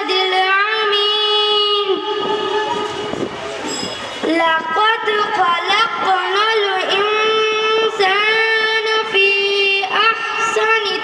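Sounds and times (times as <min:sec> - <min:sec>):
girl singing amplified chant: 0:00.0 - 0:03.2, 0:04.2 - 0:11.0.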